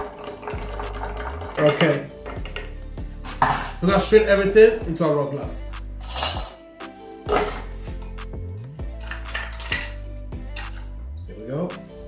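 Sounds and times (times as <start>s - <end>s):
metal and glass clinking: 0.0s - 3.8s, 6.0s - 6.6s, 7.3s - 7.9s, 8.9s - 10.9s
background music: 0.0s - 12.0s.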